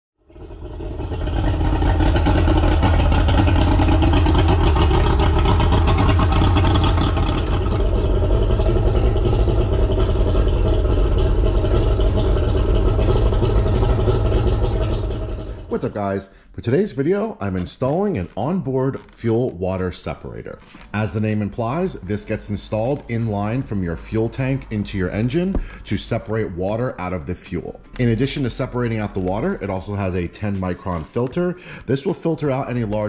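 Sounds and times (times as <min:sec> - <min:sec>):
engine running steadily: 0:00.2 - 0:16.5, 0:20.6 - 0:26.8, 0:27.8 - 0:33.0.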